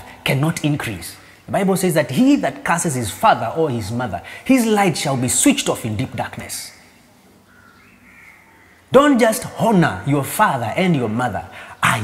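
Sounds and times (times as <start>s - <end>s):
man speaking: 0.0s - 6.9s, 8.9s - 12.0s.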